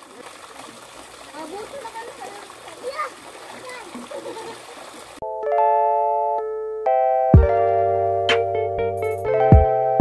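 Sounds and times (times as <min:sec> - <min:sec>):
distant people talking and calling: 0:00.0 - 0:05.2
fountains splashing into water: 0:00.0 - 0:05.2.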